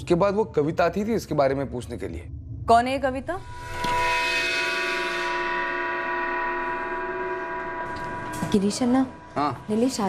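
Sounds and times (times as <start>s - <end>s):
bell-like ringing chord: 3.4s - 10.0s.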